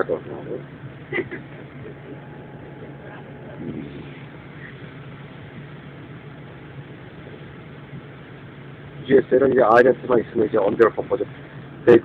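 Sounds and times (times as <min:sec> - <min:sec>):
bus engine drone from inside: 0:00.0 - 0:12.0.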